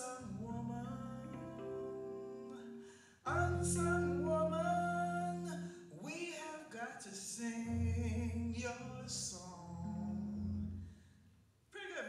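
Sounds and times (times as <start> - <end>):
electric keyboard chords: 0.0 - 6.1
person singing slow song: 0.0 - 10.6.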